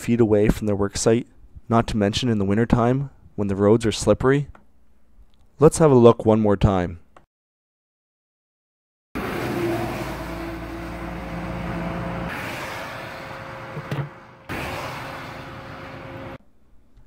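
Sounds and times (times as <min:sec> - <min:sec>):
road traffic passing: 0:09.2 - 0:16.4.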